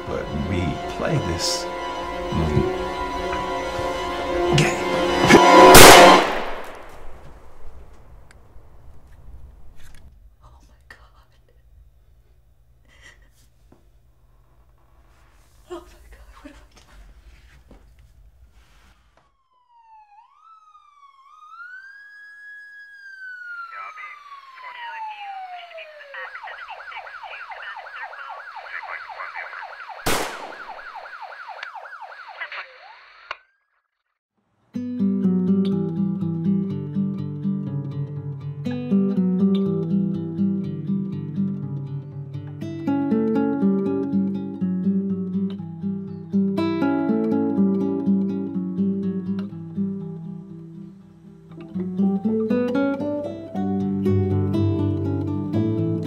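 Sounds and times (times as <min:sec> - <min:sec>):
music: 0:00.0 - 0:06.2, 0:34.7 - 0:56.0
emergency vehicle siren: 0:00.0 - 0:06.3, 0:19.0 - 0:33.5
loud bang: 0:05.3 - 0:07.9, 0:30.0 - 0:31.0.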